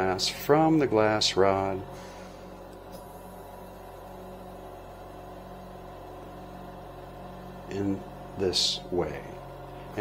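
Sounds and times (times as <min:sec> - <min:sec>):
torch hum with faint hiss: 0:00.0 - 0:10.0.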